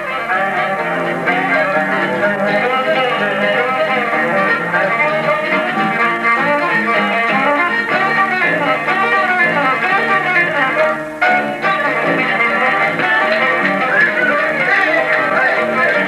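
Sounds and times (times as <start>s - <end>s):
guitar accompaniment: 0.0s - 16.0s
violin playing lead: 0.0s - 16.0s.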